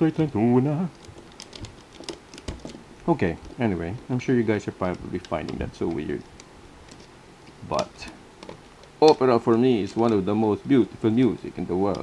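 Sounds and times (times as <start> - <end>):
loom hook clicking and tapping: 0.9 - 2.8, 3.4 - 9.2, 11.2 - 12.0.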